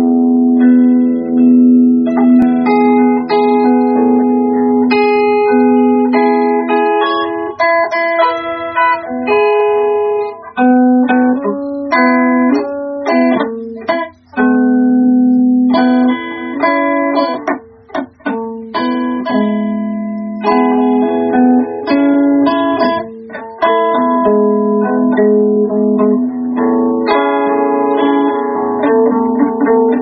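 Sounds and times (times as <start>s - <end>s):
guitar playing: 0.0s - 30.0s.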